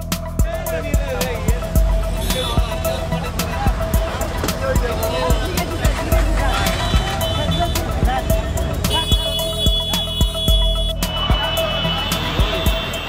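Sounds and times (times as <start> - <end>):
background music: 0.0 - 13.0
crowd noise: 0.0 - 13.0
traffic noise: 0.0 - 13.0
voices: 0.0 - 13.0.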